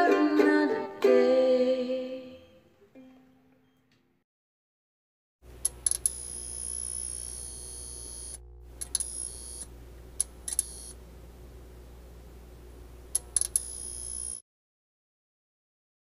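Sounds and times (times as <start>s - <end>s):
steady low electronic hum: 5.4s - 14.4s
sharp clicks: 5.6s - 6.2s, 8.3s - 10.9s, 13.1s - 13.7s.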